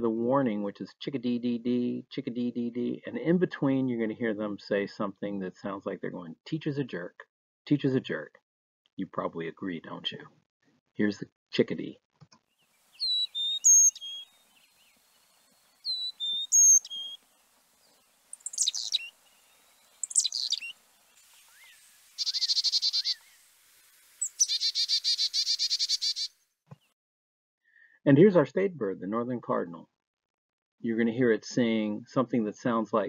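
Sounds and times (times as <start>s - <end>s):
chickadee buzzy call: 12.8s - 14.4s, 15.7s - 17.6s, 18.2s - 26.4s
chickadee whistled song: 13.0s - 15.0s, 15.6s - 17.2s, 18.4s - 19.2s, 19.9s - 23.4s, 24.2s - 26.3s.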